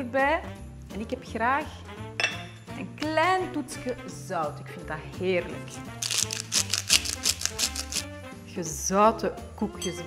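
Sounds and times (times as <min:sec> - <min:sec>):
background music: 0:00.0 - 0:10.0
salt mill grinding: 0:06.0 - 0:08.0.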